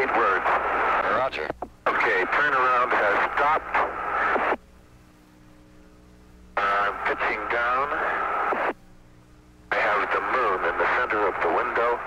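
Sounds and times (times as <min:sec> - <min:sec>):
man talking over radio: 0:00.0 - 0:04.6, 0:06.6 - 0:08.7, 0:09.7 - 0:12.0.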